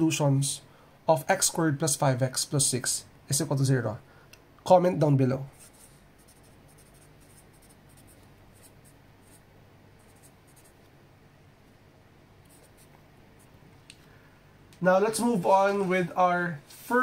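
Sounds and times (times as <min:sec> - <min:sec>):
marker scratching on paper: 0:05.6 - 0:09.4, 0:10.0 - 0:10.8, 0:12.4 - 0:13.5.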